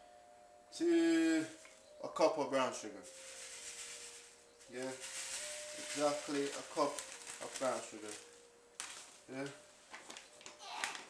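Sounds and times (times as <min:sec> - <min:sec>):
sugar pouring into plastic bowl: 0:03.0 - 0:09.5.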